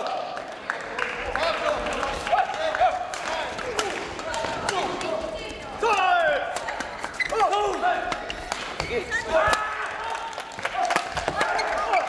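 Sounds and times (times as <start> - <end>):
shoes squeaking on floor: 6.6 - 9.5, 11.2 - 12.0.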